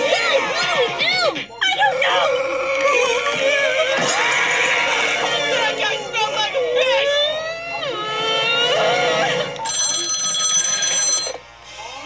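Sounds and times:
cartoon characters screaming: 1.7s - 5.8s
cartoon telephone ringing: 9.6s - 11.4s.

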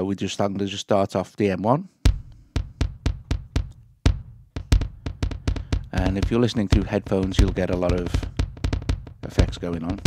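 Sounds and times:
kick drum with echoes: 2.0s - 10.0s.

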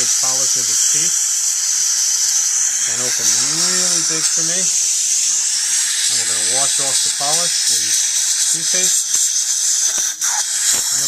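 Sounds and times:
dental handpiece polishing: 0.0s - 11.0s
dental suction hissing: 0.0s - 11.0s.

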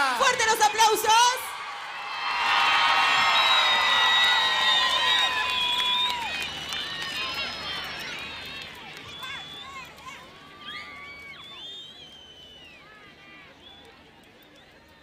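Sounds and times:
crowd cheering and screaming: 1.4s - 13.5s.

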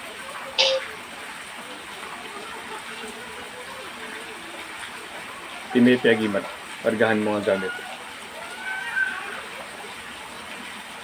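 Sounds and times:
faint voice murmuring: 1.7s - 6.6s.

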